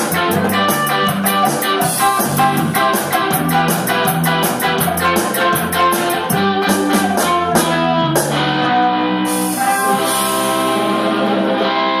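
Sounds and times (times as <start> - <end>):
rock band sustained chord: 0.0 - 12.0.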